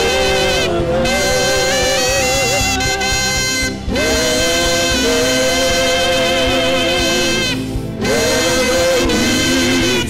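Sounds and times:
saxophone playing long notes: 0.0s - 10.0s.

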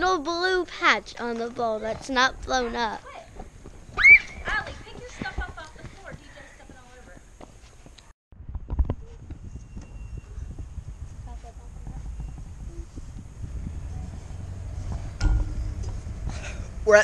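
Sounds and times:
low rumbling wind: 0.0s - 17.0s
child squealing: 4.0s - 4.5s
microphone handling noise: 8.4s - 16.9s
thump: 14.9s - 16.6s.

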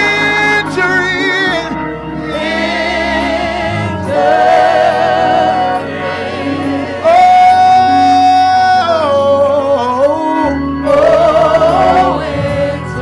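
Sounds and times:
person singing gospel: 0.0s - 13.0s.

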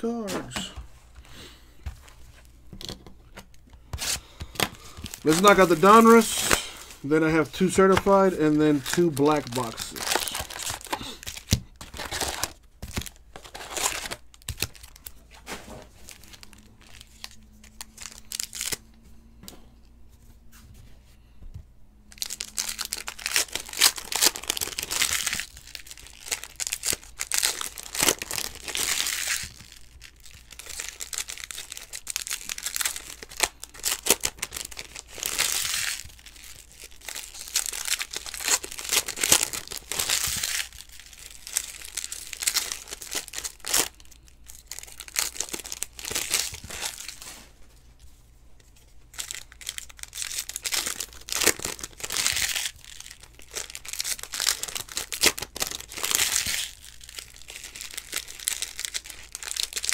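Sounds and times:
cards being handled: 0.1s - 1.2s, 1.8s - 18.8s
wrappers tearing and crinkling: 3.5s - 19.0s, 22.1s - 48.1s, 48.7s - 59.9s.

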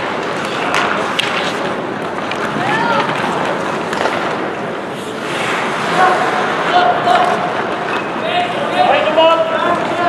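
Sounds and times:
hockey play and crowd noise: 0.0s - 10.0s
indistinct shouting voices: 5.8s - 7.6s.

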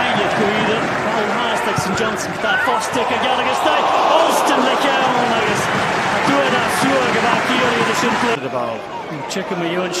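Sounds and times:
commentator talking: 0.0s - 10.0s
stadium crowd noise: 0.0s - 10.0s.

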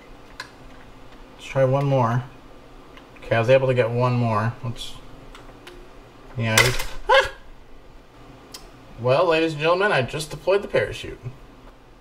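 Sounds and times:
man exclaiming: 6.7s - 7.5s.

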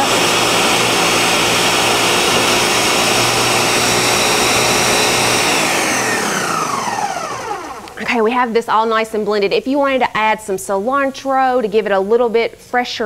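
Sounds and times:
blender running: 0.0s - 8.2s.

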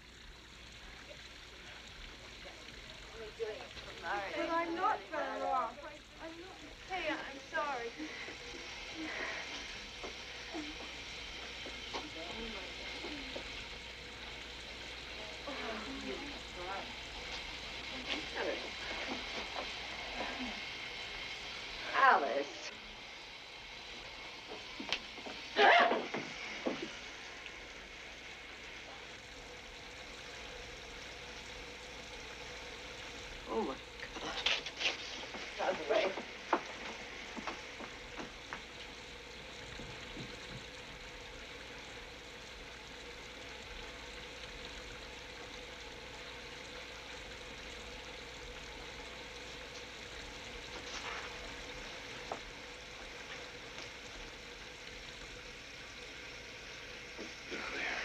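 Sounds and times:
shower spray running: 0.0s - 58.0s.

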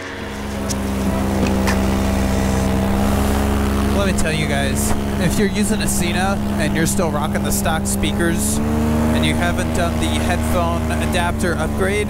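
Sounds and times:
paramotor engine droning: 0.0s - 12.0s.

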